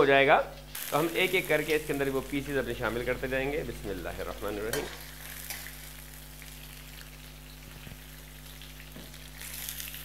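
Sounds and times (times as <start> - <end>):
chicken frying in ghee: 0.7 - 10.0.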